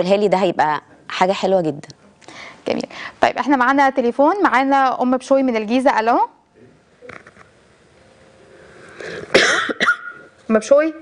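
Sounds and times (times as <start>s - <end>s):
harsh cough-like bursts: 9.0s - 10.4s.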